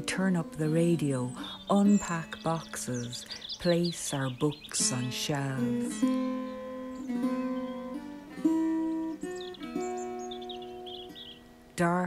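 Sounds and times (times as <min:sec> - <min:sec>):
acoustic guitar notes plucked: 0:00.0 - 0:12.0.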